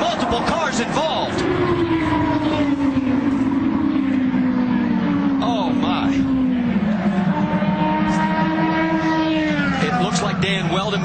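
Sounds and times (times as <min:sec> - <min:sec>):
dense engine roar: 0:00.0 - 0:11.0
race car engine note: 0:01.3 - 0:10.7.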